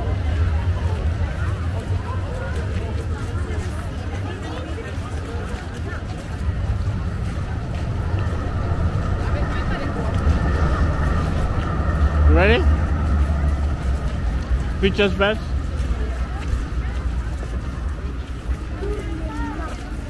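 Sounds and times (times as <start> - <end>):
crowd voices: 0.0 - 20.0
electric tram passing: 0.0 - 20.0.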